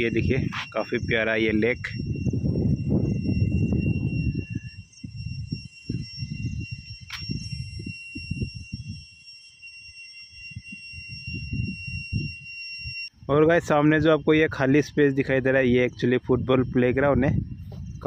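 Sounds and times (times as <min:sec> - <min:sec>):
wind buffeting microphone: 0:00.0 - 0:09.2, 0:10.4 - 0:18.0
faint high-pitched whining tones: 0:00.0 - 0:18.0.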